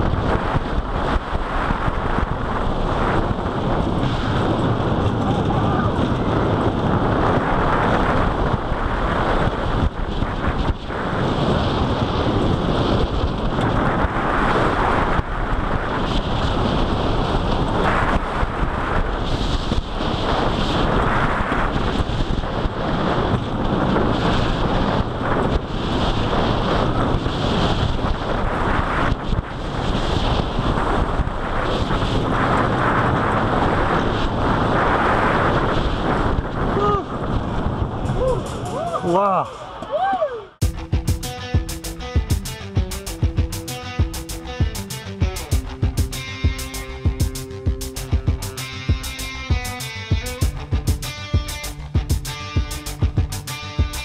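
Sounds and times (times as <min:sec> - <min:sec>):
roller coaster roaring on track: 0:00.0 - 0:54.0
wind buffeting microphone: 0:00.0 - 0:54.0.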